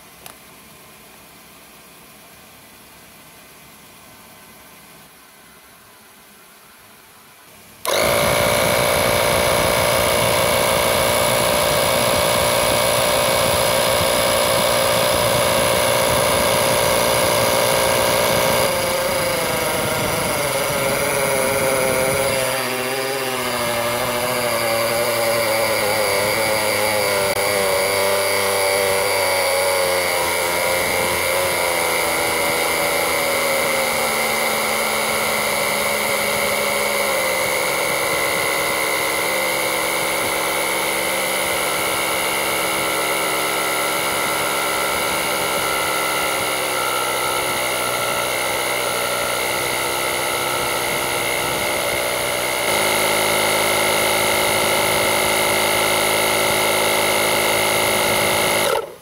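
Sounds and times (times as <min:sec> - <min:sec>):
portable air compressor running: 0:00.0 - 0:00.4, 0:07.5 - 0:59.0.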